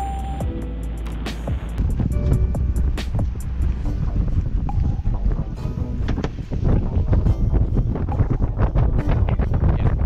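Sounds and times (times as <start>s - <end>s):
background music: 0.0s - 10.0s
low rumble: 0.0s - 10.0s
wind buffeting microphone: 1.7s - 10.0s.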